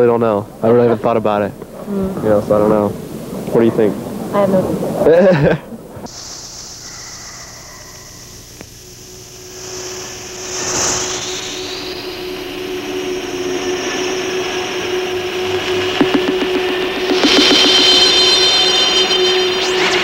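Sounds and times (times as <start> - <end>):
steady hum tone: 0.0 - 20.0
moving vehicle running noise: 11.3 - 20.0.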